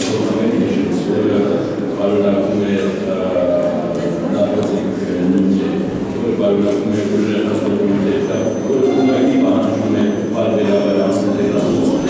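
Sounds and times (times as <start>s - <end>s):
man speaking into a microphone: 0.0s - 12.0s.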